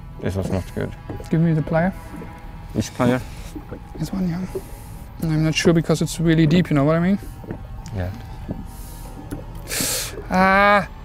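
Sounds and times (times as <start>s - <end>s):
hissing intake of breath: 7.2s - 10.3s.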